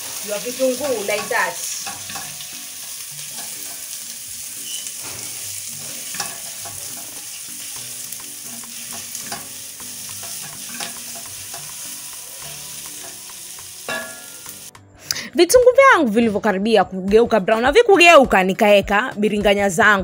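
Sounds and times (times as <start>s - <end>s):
onions sizzling in hot oil: 0.0s - 14.7s
spatula scraping and tapping pot: 1.0s - 14.7s.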